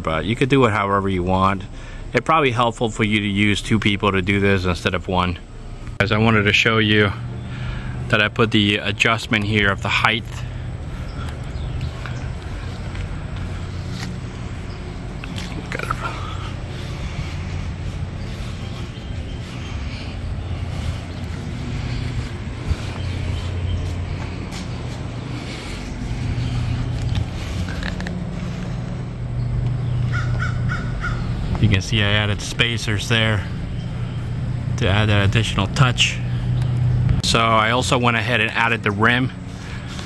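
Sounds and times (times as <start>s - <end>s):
steady low hum: 0.0s - 40.0s
bird calls: 9.9s - 34.8s.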